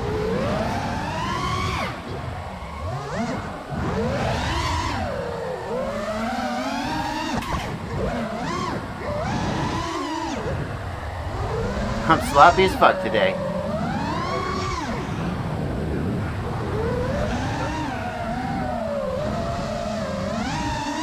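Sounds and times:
drone motors whining: 0.0s - 21.0s.

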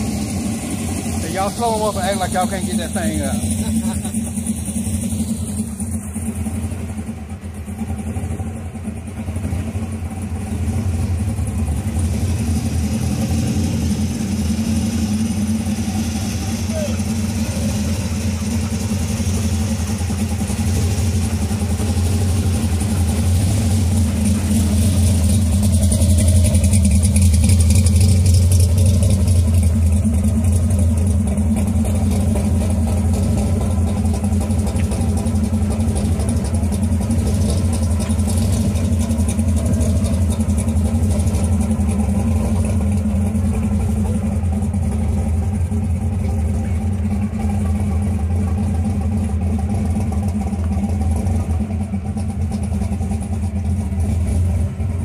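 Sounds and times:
supercharged engine idling: 0.0s - 55.0s.

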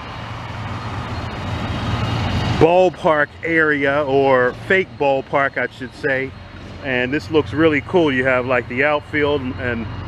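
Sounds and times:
passing vehicle engine and tyres: 0.0s - 10.0s.

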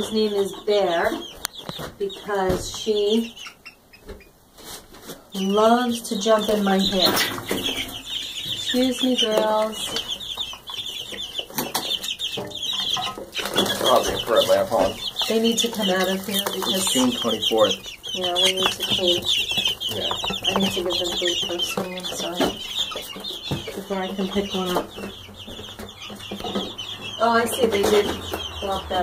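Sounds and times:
chicks peeping: 0.0s - 29.0s
knocks and rustles: 11.4s - 28.7s.

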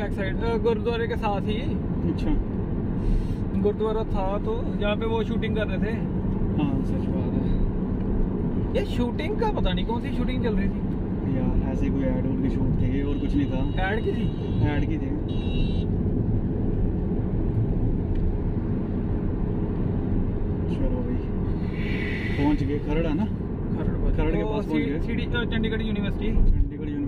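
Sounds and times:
car road and engine rumble: 0.0s - 27.0s
low conversation: 20.4s - 27.0s.

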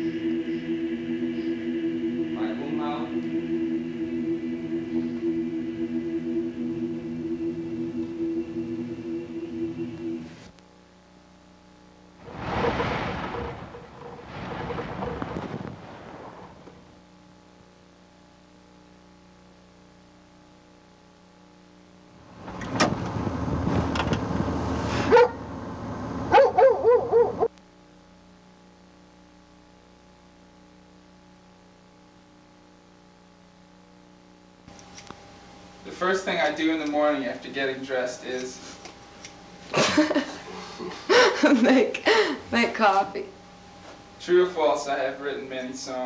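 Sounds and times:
choir holding a chord: 0.0s - 10.5s
faint steady hum: 0.0s - 46.0s
rough rustling and rumbling: 12.2s - 17.1s
animal call and high-pitched yelps: 26.3s - 27.5s.

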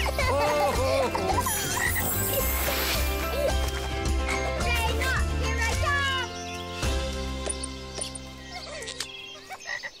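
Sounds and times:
jingle chord: 1.7s - 3.2s.

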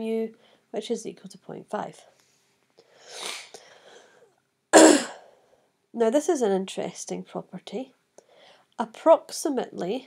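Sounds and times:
woman coughing: 4.8s - 5.3s.

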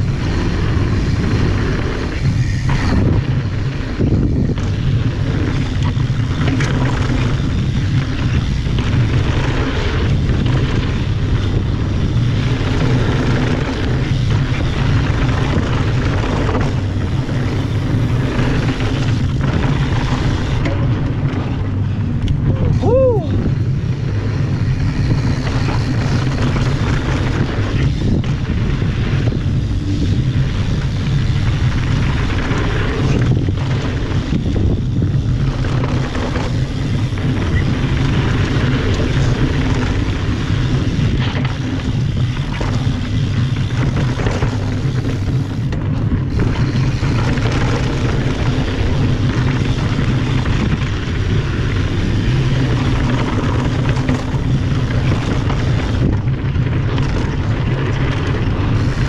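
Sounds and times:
bike tyres rolling on dirt: 0.0s - 59.0s
wind buffeting microphone: 0.0s - 59.0s.

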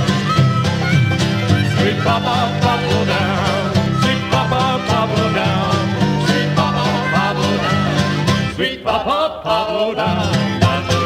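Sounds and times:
wavering reed melody: 0.0s - 8.5s
strummed banjo and guitar: 0.0s - 8.8s, 9.6s - 11.0s.

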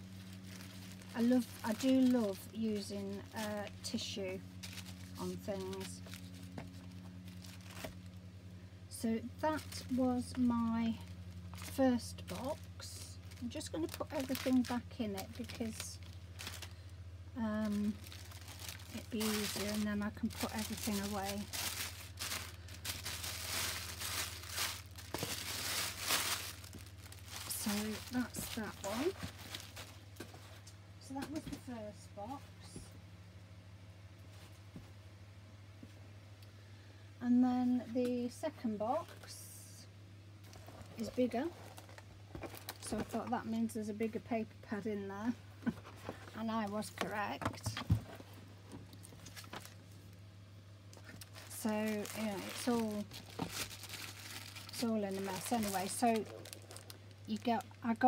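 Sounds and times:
tissue paper crinkling: 0.0s - 8.2s, 9.5s - 16.8s, 17.6s - 30.6s, 48.9s - 50.2s, 51.0s - 58.0s
low steady hum: 0.0s - 58.0s.

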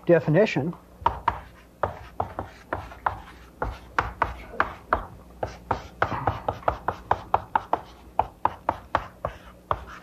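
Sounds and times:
chalk tapping on blackboard: 1.0s - 10.0s.

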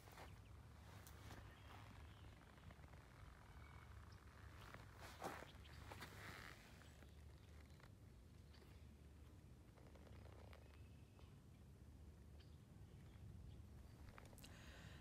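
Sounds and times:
soft rustles: 0.0s - 7.9s.

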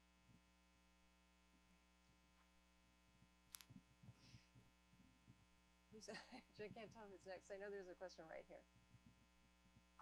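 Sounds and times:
electrical mains hum: 0.0s - 10.0s
person speaking: 6.0s - 8.6s.

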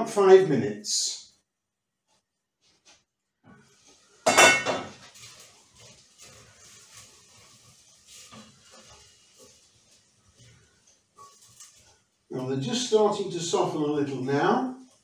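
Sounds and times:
spatula stirring vegetables in pot: 1.9s - 15.0s
metal pot lid clanking: 4.2s - 5.0s.

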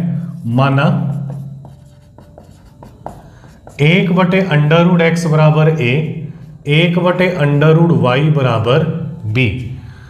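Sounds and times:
marker pen on whiteboard: 0.0s - 7.5s.

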